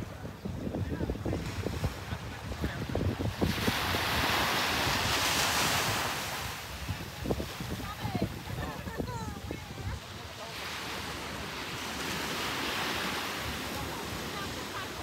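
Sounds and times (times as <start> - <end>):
wind buffeting microphone: 0.0 - 15.0
wave breaking on beach: 1.0 - 15.0.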